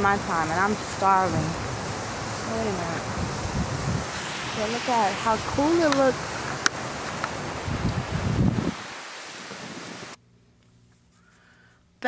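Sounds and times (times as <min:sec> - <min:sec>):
wind on microphone: 0:00.0 - 0:10.2.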